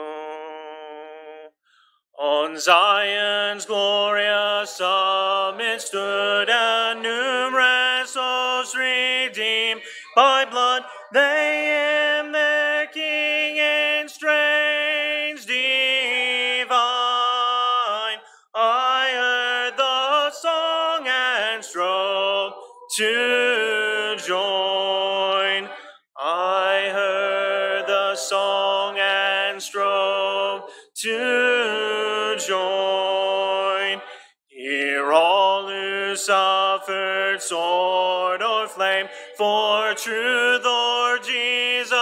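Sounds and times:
singer breathing in: 1.6 - 2.0, 9.8 - 10.1, 25.7 - 26.1, 30.7 - 30.9, 34.1 - 34.4, 39.1 - 39.4
man singing a hymn: 2.2 - 42.0.

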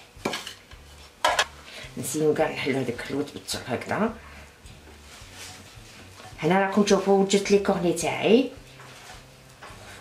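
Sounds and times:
kitchenware clattering: 0.2 - 1.5.

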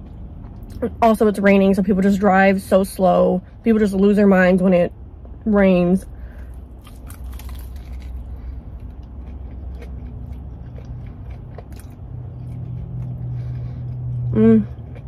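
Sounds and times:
low steady hum: 0.0 - 15.0
crunchy chewing: 6.3 - 15.0.

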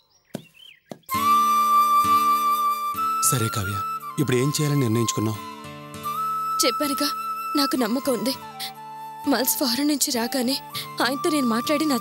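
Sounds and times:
bird-like chirp: 0.0 - 1.2.

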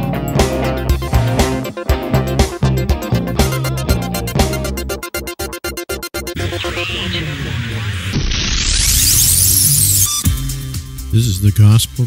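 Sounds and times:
rising noise sweep: 6.3 - 10.3.

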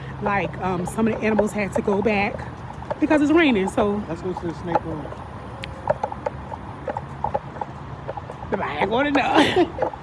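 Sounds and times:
light taps: 4.6 - 8.5.

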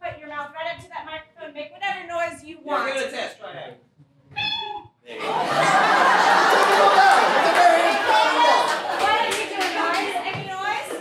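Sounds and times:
audience laughing: 5.1 - 10.2.

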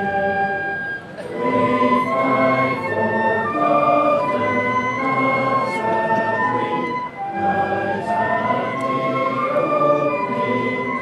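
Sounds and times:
crowd singing a hymn: 0.0 - 11.0.

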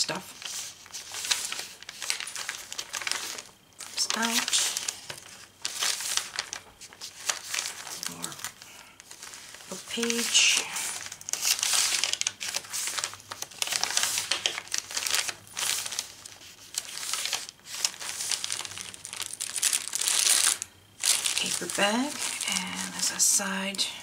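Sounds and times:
paper pages rustling and crinkling: 0.0 - 23.8.

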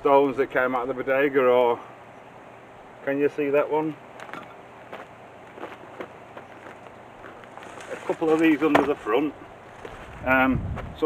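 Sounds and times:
footsteps crunching on rubble: 4.2 - 11.0.

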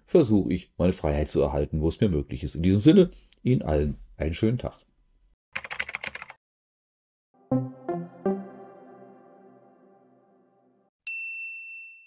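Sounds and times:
music chord: 7.4 - 10.8
bright high ding: 11.0 - 12.0.

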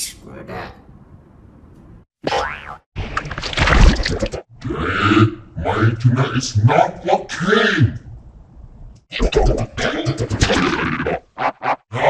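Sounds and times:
cartoon boing: 2.2 - 2.8.

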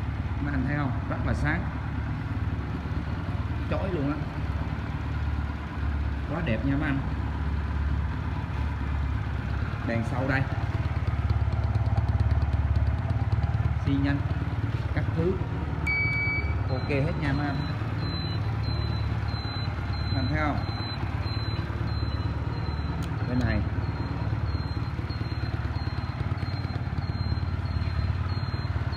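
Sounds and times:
motorcycle engine idling: 0.0 - 28.9.

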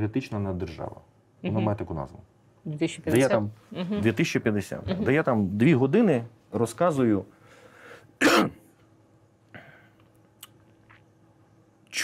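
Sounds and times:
man coughing: 8.2 - 8.7.

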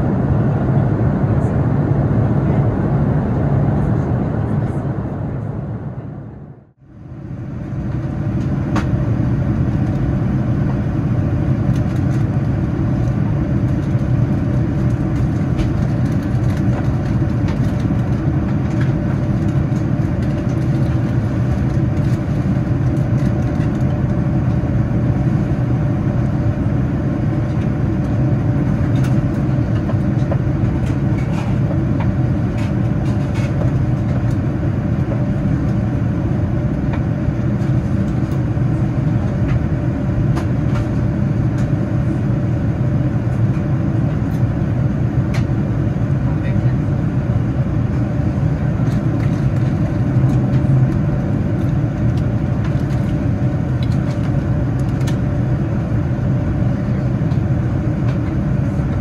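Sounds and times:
airplane cabin rumble: 0.0 - 59.0.

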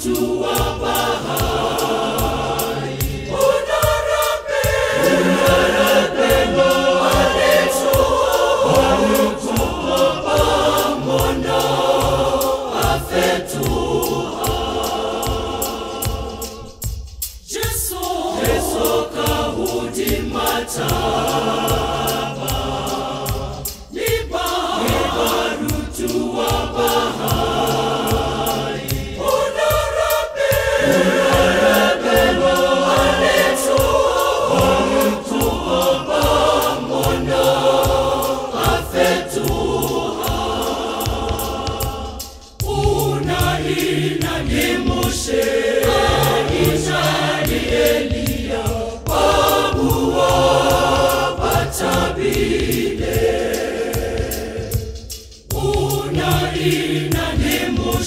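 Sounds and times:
choir singing gospel in harmony: 0.0 - 58.0
steady beat: 0.0 - 58.0.

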